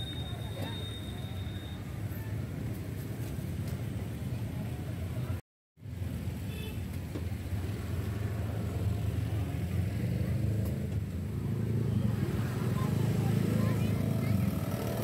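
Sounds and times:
motorbikes and cars passing: 0.0 - 15.0.

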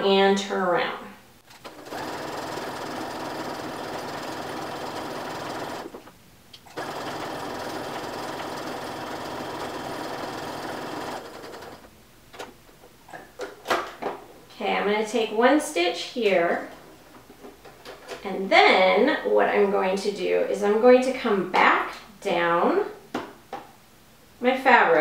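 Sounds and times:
sewing machine whirring: 1.5 - 11.9.

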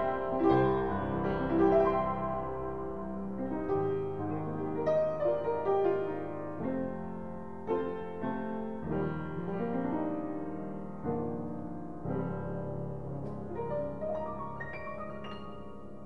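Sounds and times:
upright piano chords and melody: 0.0 - 16.0.

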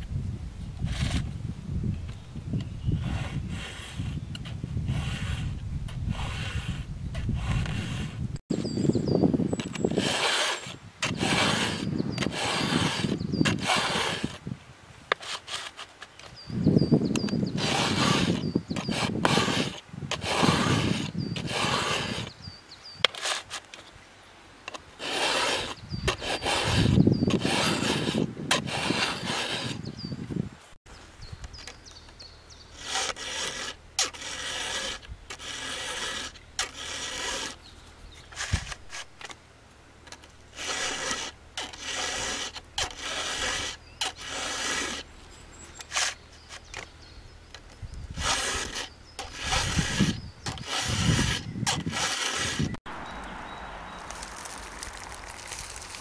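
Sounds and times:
file rasping on saw chain cutter: 6.1 - 8.2, 9.9 - 14.4, 17.1 - 22.4, 25.0 - 29.8, 32.8 - 37.6, 40.5 - 45.1, 48.2 - 52.8.

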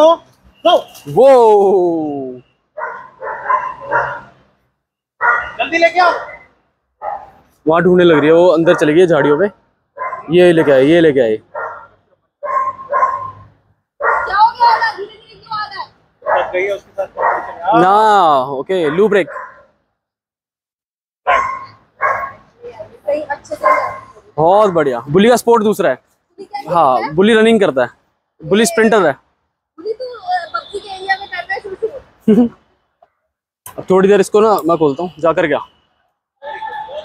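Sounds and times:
dog barking: 2.8 - 4.4, 5.2 - 7.4, 8.1 - 10.9, 11.5 - 14.8, 16.2 - 17.7, 18.8 - 19.7, 21.2 - 22.5, 23.6 - 24.2.

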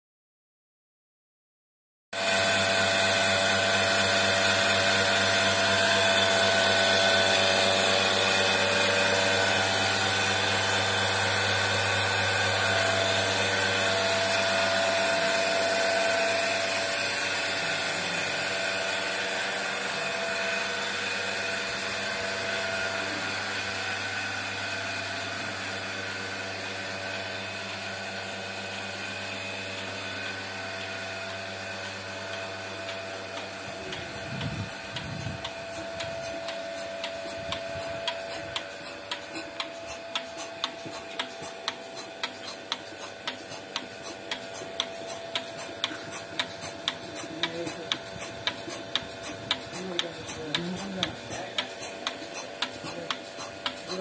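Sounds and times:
milking machine humming and whining: 2.2 - 54.0.

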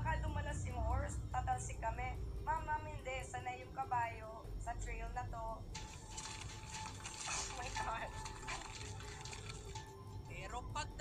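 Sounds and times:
background music: 0.0 - 11.0
person speaking on television: 7.1 - 9.4.

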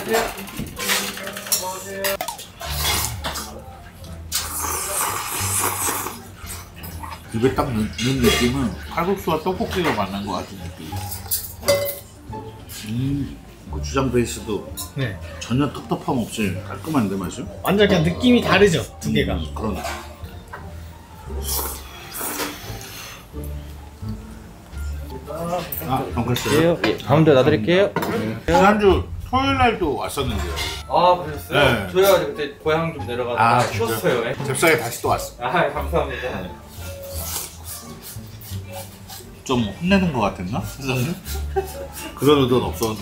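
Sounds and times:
metal chopsticks clinking bowls: 0.0 - 4.5, 6.8 - 9.0, 9.6 - 12.9
person slurping noodle soup: 2.6 - 3.3, 4.3 - 6.7, 21.4 - 23.3.

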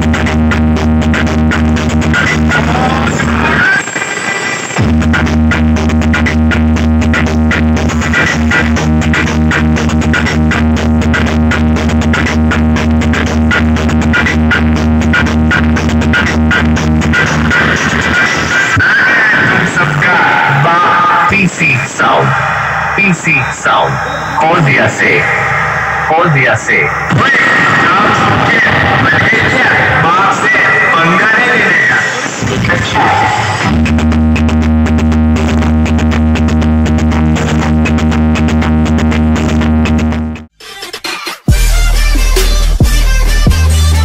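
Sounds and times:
deep steady bass tone: 0.0 - 3.7, 4.8 - 18.2, 19.7 - 31.6, 33.6 - 40.5, 41.5 - 44.0
loud electronic dance music: 0.0 - 44.0.

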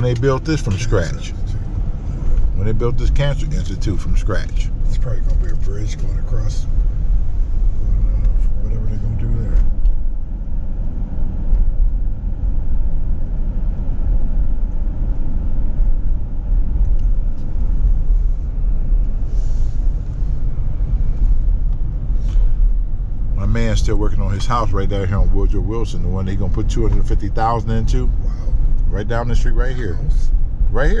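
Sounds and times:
road and engine rumble in cab: 0.0 - 31.0.

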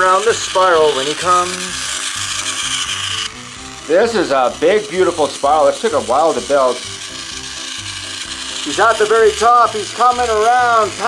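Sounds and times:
toy train motor whirring: 0.0 - 11.0.

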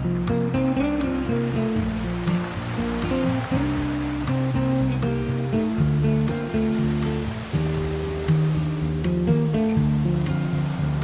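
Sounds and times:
classical guitar playing: 0.0 - 11.0
ocean waves breaking: 0.0 - 11.0.

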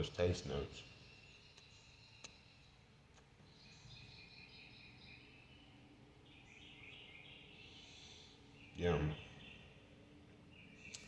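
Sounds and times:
faint distant birds chirping: 0.0 - 11.0.

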